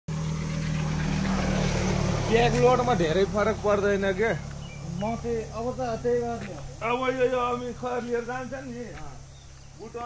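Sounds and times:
vehicle engine running: 0:00.1 - 0:10.0.

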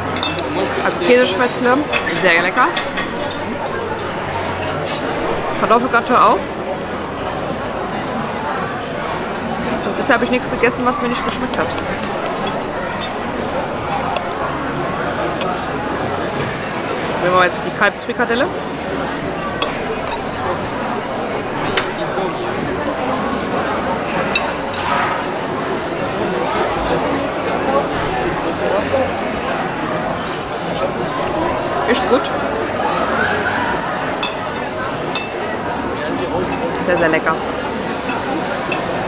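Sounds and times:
tableware clink: 0:00.0 - 0:01.2, 0:01.8 - 0:05.4, 0:09.8 - 0:14.5, 0:15.2 - 0:15.6, 0:19.2 - 0:20.9, 0:21.6 - 0:22.0, 0:24.2 - 0:25.1, 0:33.9 - 0:39.0
background chatter: 0:00.0 - 0:39.0.

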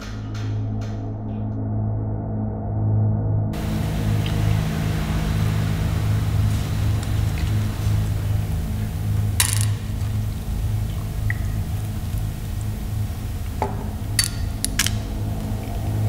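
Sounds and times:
low pulsing hum: 0:00.0 - 0:16.0
faint ticks: 0:03.6 - 0:13.6
glass or crockery clink: 0:09.4 - 0:09.9.

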